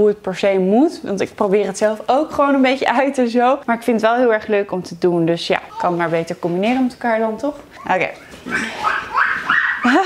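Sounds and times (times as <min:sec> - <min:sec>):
baby squealing and babbling: 0:05.7 - 0:06.1, 0:08.2 - 0:10.0.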